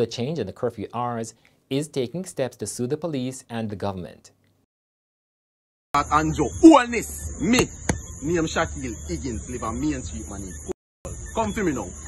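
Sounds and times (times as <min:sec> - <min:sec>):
man talking: 0:00.0 - 0:04.3, 0:06.0 - 0:10.8, 0:11.4 - 0:12.0
steady high hiss: 0:06.0 - 0:12.0.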